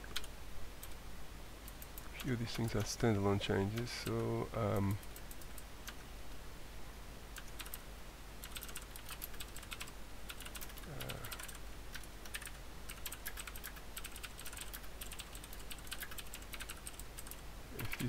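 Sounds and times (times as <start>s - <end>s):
computer keyboard typing: 0.0s - 1.0s, 7.4s - 7.8s, 8.4s - 18.0s
person saying uh: 2.2s - 5.0s, 10.8s - 11.5s, 17.8s - 18.0s.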